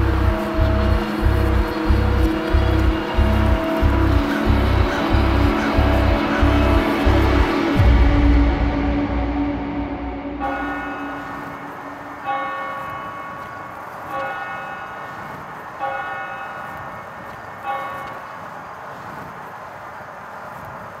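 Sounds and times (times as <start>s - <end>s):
low drone: 0.0s - 14.9s
bell tolling: 0.0s - 15.0s.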